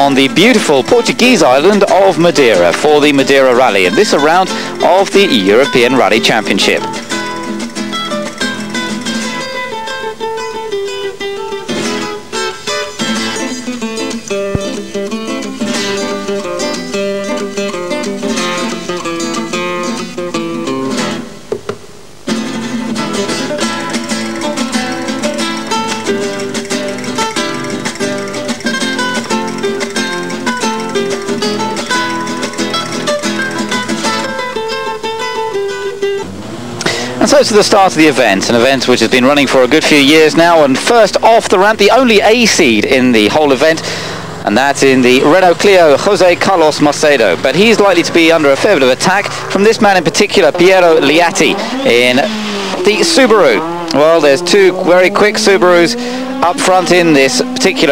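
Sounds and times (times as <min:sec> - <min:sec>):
acoustic guitar music: 0:00.0 - 0:57.9.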